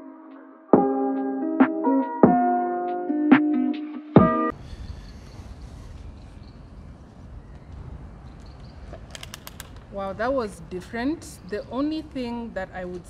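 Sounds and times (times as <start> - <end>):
background music: 0.0 - 4.6
sharp clicks: 8.4 - 9.9.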